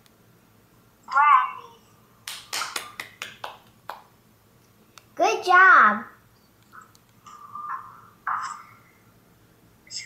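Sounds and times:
child clapping hands: 2.2 - 4.1.

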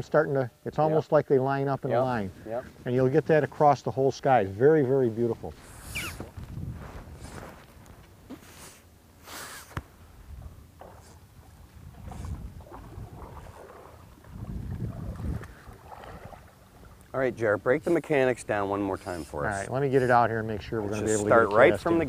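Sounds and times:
wind rumble on microphone: 5.5 - 7.7, 10.1 - 16.5
paddles splashing in water: 10.8 - 17.2.

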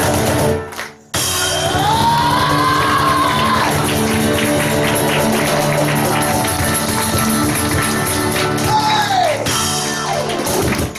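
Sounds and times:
acoustic band playing: 0.0 - 10.9
cajon hits: 0.0 - 10.9.

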